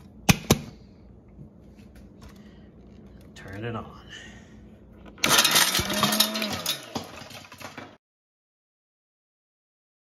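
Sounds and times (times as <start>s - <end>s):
pieces clattering in grinder jar: 5.2s - 8.0s.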